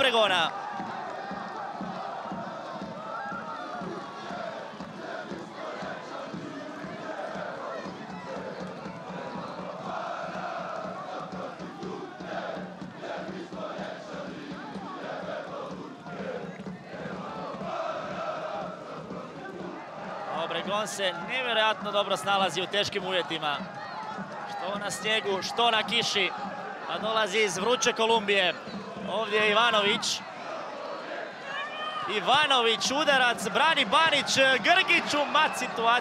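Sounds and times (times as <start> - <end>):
stadium crowd chanting and singing: 0.0 - 36.0.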